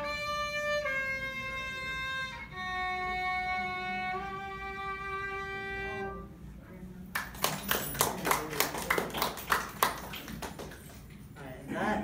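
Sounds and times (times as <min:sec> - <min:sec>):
audience clapping: 0:07.1 - 0:11.3.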